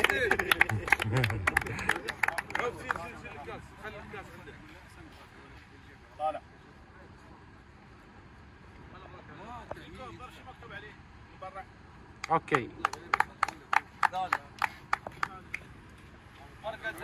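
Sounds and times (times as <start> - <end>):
scattered clapping: 0.0 - 3.6, 12.2 - 16.1
low chatter: 0.0 - 17.0.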